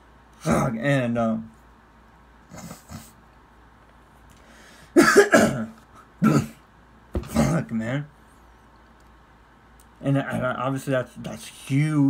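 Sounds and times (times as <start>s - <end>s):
man coughing: 4.9s - 6.6s, 7.2s - 7.7s.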